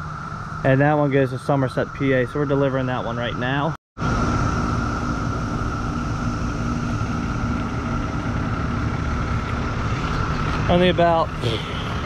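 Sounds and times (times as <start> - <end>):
cicadas droning: 0.0 - 12.0
truck engine idling: 0.0 - 12.0.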